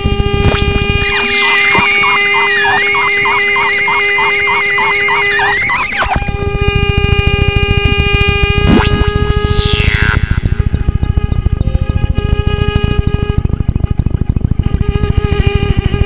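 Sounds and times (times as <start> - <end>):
rapid low pulsing: 0.0 - 16.0
sustained drone tone: 0.0 - 16.0
swooping synth sweep: 0.3 - 14.8
wavering high warbling tone: 0.4 - 6.2, 8.6 - 14.4.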